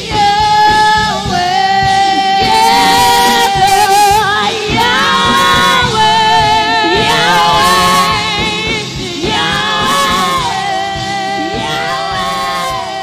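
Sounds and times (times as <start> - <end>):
instrumental accompaniment with beat: 0.0 - 13.0
women singing gospel song: 0.0 - 13.0.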